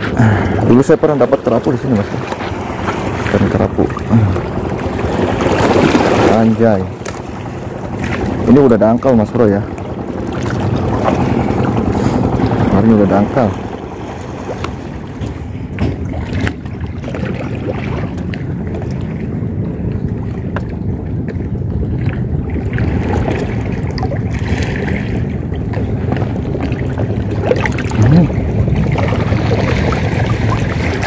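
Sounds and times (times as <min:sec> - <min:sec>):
wind rumble on microphone: 0:00.0 - 0:31.0.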